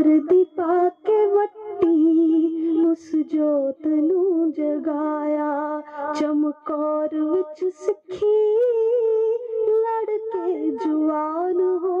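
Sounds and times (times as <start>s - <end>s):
person singing long high note: 0.9s - 3.6s.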